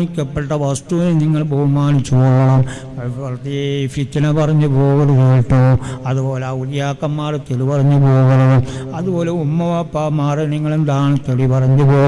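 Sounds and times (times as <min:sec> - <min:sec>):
man chanting a prayer: 0:00.0 - 0:12.0.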